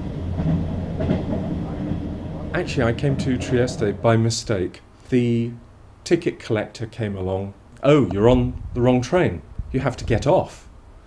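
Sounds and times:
train running on rails: 0.0s - 4.9s.

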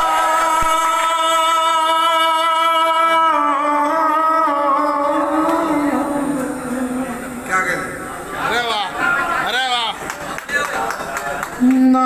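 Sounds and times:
man singing verse: 0.0s - 7.5s.

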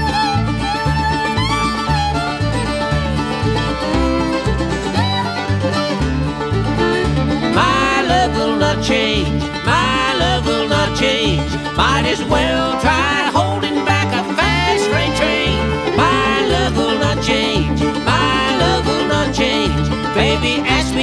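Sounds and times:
banjo: 0.0s - 21.0s
bass beat: 0.0s - 21.0s
fiddle: 0.0s - 21.0s
guitar: 0.0s - 21.0s
sliding notes: 0.0s - 21.0s.

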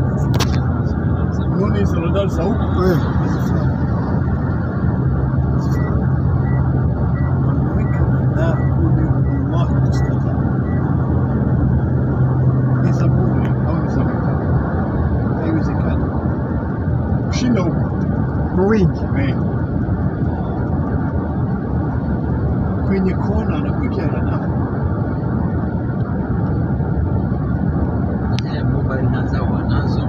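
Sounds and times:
road and engine noise: 0.0s - 30.0s.

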